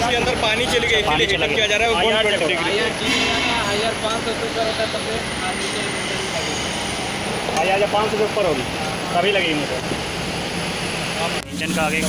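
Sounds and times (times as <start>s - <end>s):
indistinct voices: 0.0s - 12.0s
industrial workshop noise: 0.0s - 12.0s.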